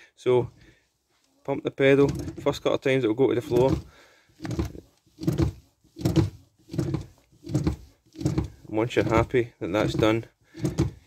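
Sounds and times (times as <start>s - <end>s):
brake pedal thunks: 3.4s - 11.0s.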